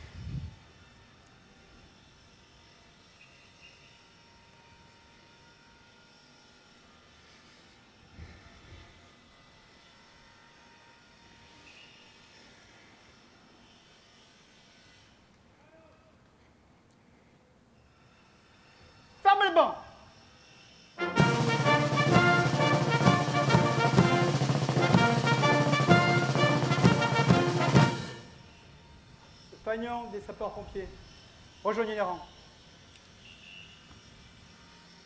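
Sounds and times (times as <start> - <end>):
faint outdoor background: 0.0 - 35.0.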